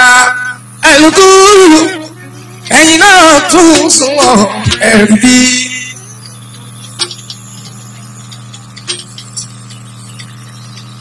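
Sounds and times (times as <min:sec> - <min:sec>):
singing with band music: 0:00.0 - 0:06.0
steady low hum: 0:00.0 - 0:11.0.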